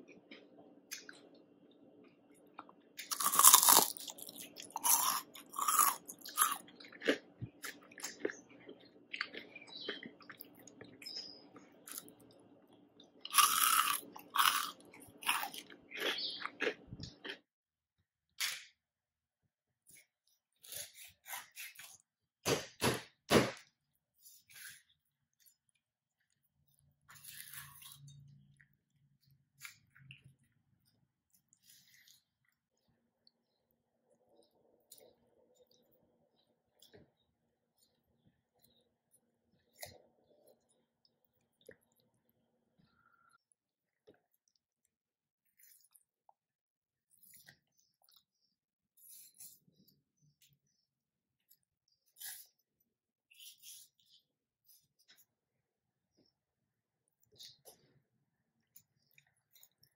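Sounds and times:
crunchy chewing: 2.4 - 17.5, 24.2 - 28.8, 58.6 - 59.9.

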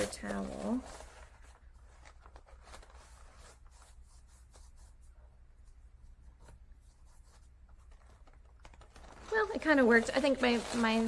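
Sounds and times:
paper towel rustling on paper: 0.0 - 5.8, 6.4 - 11.0
soft paper crinkles: 0.0 - 11.0.

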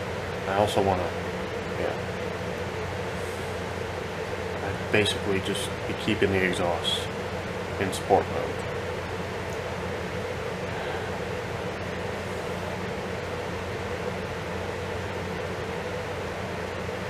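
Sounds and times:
ventilation hum and hiss: 0.0 - 17.0
low drone: 10.5 - 13.0.

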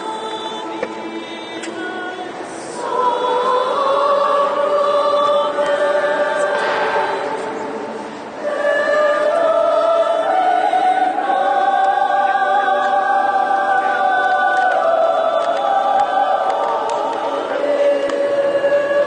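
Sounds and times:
choir singing held chords: 0.0 - 19.0.

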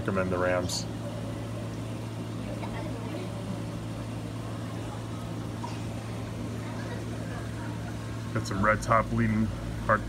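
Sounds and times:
aquarium pumps humming: 0.0 - 10.0.

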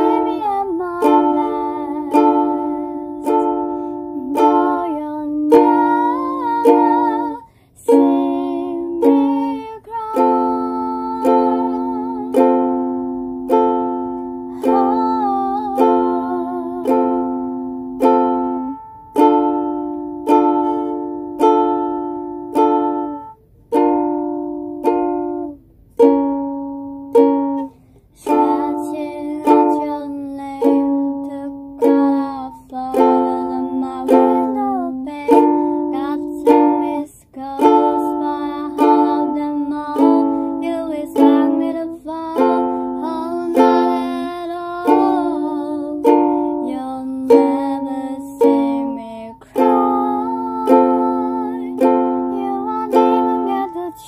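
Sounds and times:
person singing: 0.0 - 23.9, 27.1 - 54.0
ukulele strumming chords: 0.0 - 54.0.

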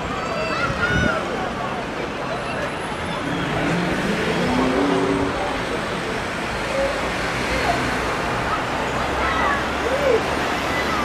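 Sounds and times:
cars driving through intersection: 0.0 - 11.0.

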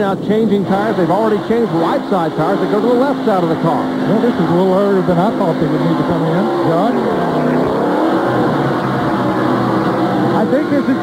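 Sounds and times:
racing car engines running: 0.0 - 11.0.

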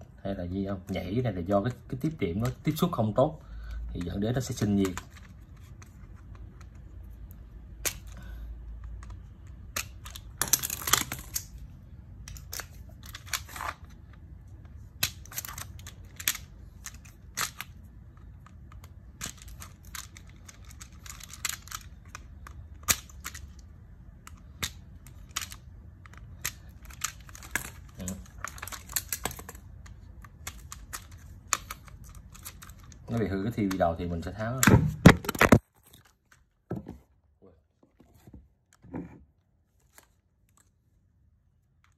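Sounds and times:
plastic clicks snaps and scrapes: 24.2 - 36.4.

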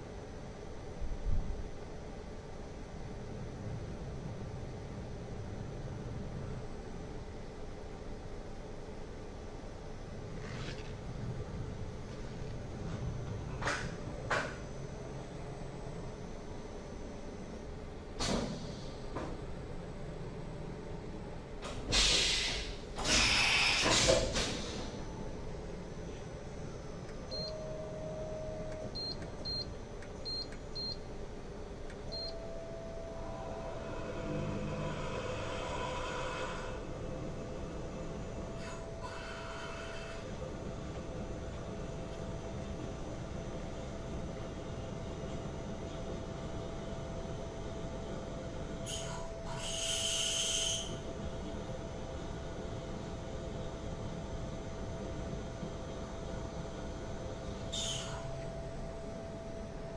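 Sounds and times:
machine motors and fans humming: 0.0 - 59.9
faint whine: 1.3 - 21.6, 24.7 - 49.5, 50.9 - 59.9
short hiss: 21.9 - 24.8.

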